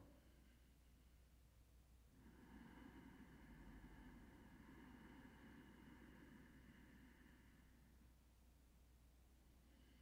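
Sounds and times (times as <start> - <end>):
slow throat breathing: 2.2 - 8.2, 9.6 - 10.0.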